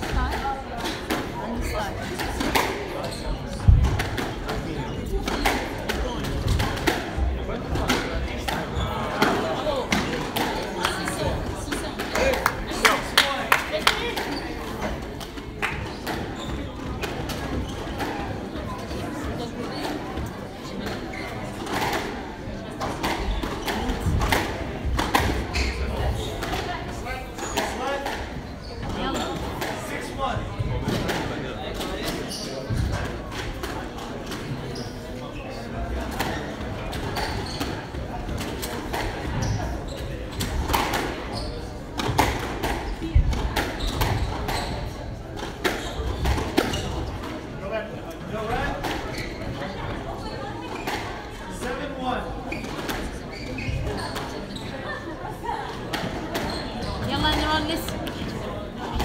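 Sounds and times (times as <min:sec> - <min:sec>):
people talking: 0:00.0 - 0:59.0.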